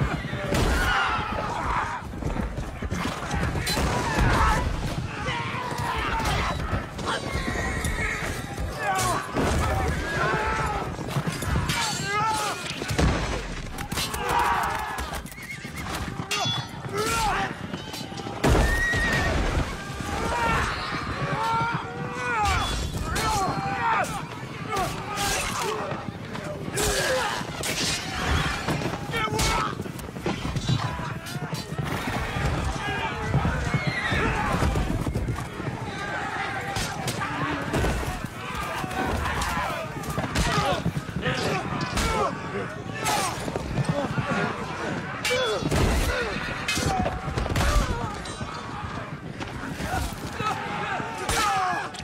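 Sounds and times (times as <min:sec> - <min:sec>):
horses whinnying: 0:00.0 - 0:12.9, 0:13.9 - 0:52.0
hooves galloping: 0:00.0 - 0:52.0.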